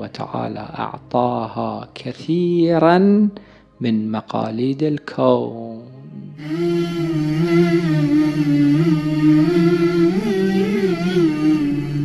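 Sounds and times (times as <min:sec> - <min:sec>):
man chanting unaccompanied: 0:00.0 - 0:12.0.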